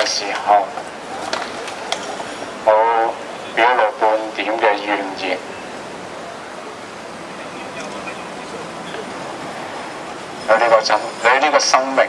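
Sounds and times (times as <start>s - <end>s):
man's voice through amplifier: 0.0s - 0.8s, 2.6s - 5.6s, 7.3s - 9.2s, 10.4s - 12.0s.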